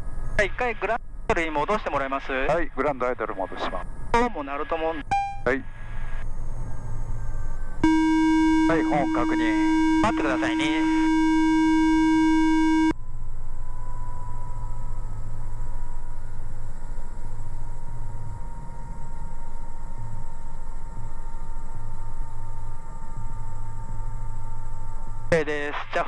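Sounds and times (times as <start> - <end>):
electronic warning tone: 5.0 - 13.0.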